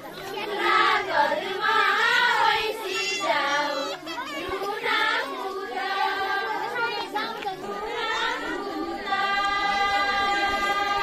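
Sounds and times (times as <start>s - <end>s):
women singing in unison: 0.2s - 11.0s.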